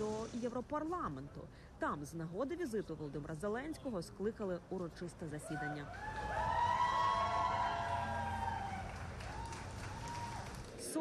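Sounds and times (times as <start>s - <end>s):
police siren wailing: 6.0s - 10.4s.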